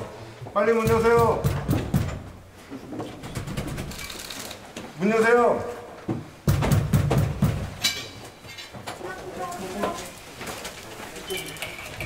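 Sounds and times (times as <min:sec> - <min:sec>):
banging on a door: 0:00.8 - 0:02.4, 0:06.4 - 0:07.9.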